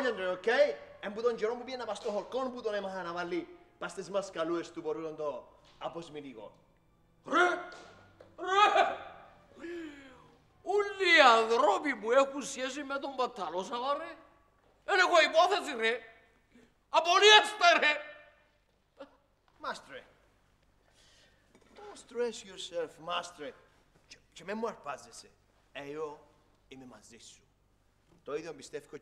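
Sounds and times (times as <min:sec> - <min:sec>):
man speaking: 0:00.0 - 0:06.6, 0:07.3 - 0:07.8, 0:10.6 - 0:16.2, 0:16.9 - 0:18.3, 0:19.0 - 0:20.2, 0:21.7 - 0:27.5, 0:28.1 - 0:29.0
man's vocal outbursts: 0:07.3 - 0:11.5.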